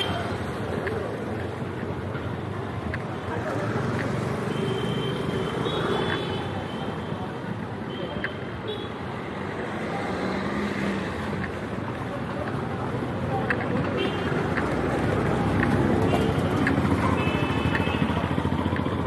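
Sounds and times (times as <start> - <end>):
passing cars and motorbikes: 0.0 - 19.0.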